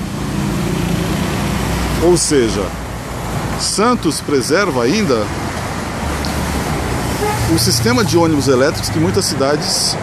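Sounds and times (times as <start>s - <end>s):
engine hum and tyre noise: 0.0s - 10.0s.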